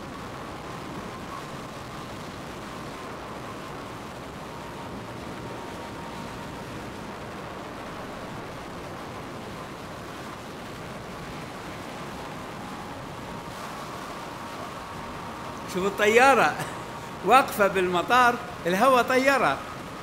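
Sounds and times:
faint steady whine: 0:00.0 - 0:20.0
roaring tornado wind: 0:00.0 - 0:20.0.

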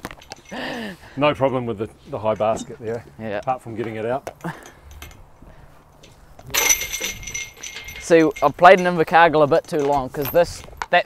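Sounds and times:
metal basket clang: 0:06.5 - 0:10.4.

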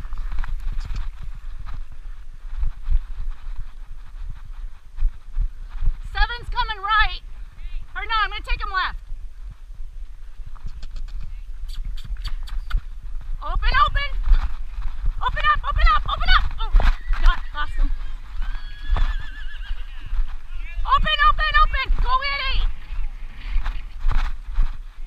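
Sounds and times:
hoofbeats in dirt: 0:00.0 - 0:25.0
wind rumble on microphone: 0:00.0 - 0:25.0
horses whinnying: 0:16.4 - 0:20.5.

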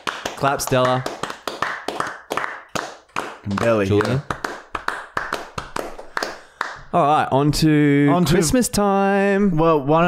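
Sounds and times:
people clapping hands: 0:00.0 - 0:07.0.

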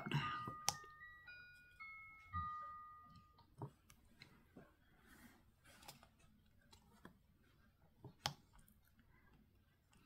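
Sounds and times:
bell-like chime notes: 0:00.0 - 0:03.5.

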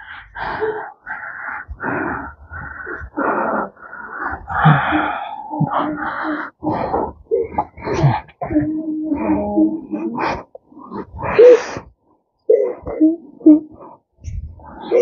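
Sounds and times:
person wheezing breaths: 0:00.0 - 0:12.0.

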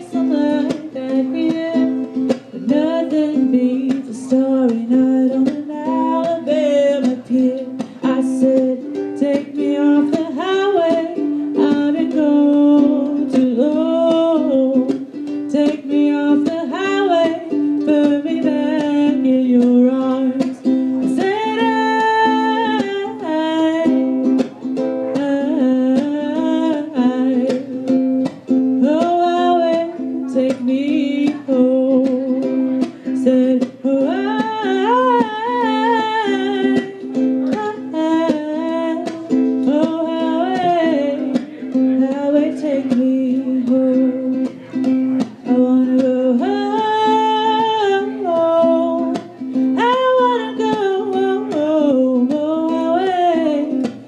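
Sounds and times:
ukulele strumming: 0:00.0 - 0:54.0
woman singing: 0:00.0 - 0:54.0.

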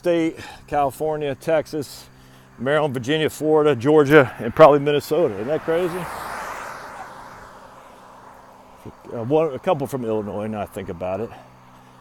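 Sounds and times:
vehicle tyre and road noise: 0:02.0 - 0:12.0.

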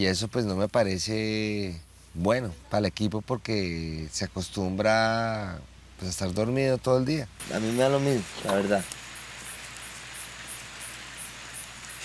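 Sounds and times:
steady hiss: 0:00.0 - 0:12.0
high insect chirping: 0:07.4 - 0:12.0.

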